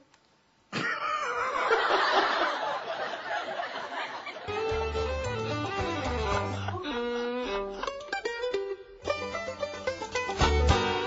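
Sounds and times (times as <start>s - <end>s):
man laughing hard: 0.8s - 4.6s.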